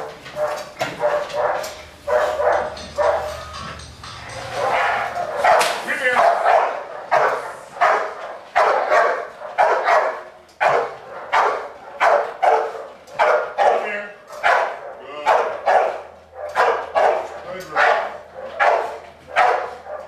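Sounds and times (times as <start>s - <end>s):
dog barking: 0.0s - 3.4s, 4.6s - 20.0s.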